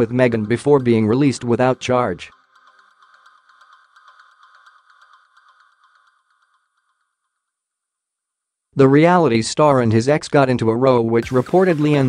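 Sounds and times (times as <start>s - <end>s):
regular ticking pulse: 0.0s - 8.6s, 11.2s - 12.0s.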